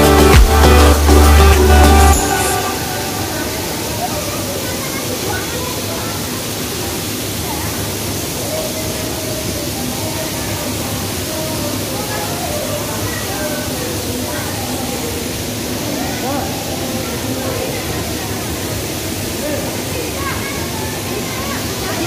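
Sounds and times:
electronic dance music: 0.0s - 4.2s
crowd murmuring: 0.0s - 6.3s
waterfall rushing: 0.0s - 22.0s.

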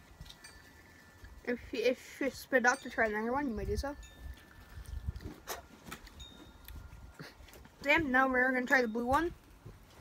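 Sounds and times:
faint high ringing tones: 0.0s - 9.4s.

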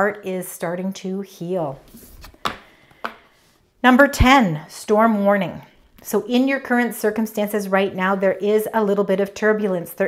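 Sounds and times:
card tapping on wooden table: 2.3s - 3.2s.

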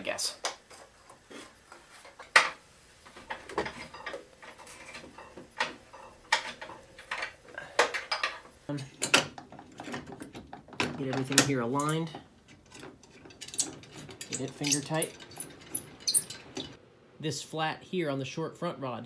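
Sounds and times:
metal rails clinking and knocking: 2.0s - 16.8s.

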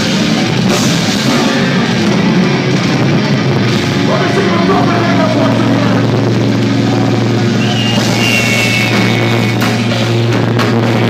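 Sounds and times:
metal band playing live: 0.0s - 11.0s
low distorted held chord: 1.2s - 10.6s.

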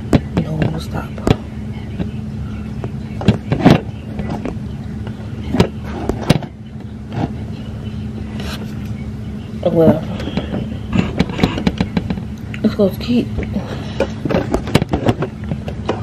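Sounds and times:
steady low hum: 0.0s - 16.0s
phone handling knocks and rubbing: 10.2s - 12.3s, 14.0s - 16.0s.

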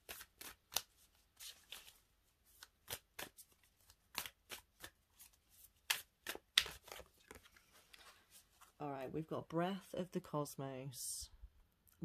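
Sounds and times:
cards being shuffled: 0.0s - 8.8s.

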